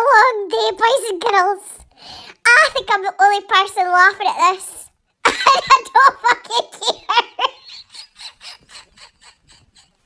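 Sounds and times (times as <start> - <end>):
man wheezing laughter: 7.4 - 10.0.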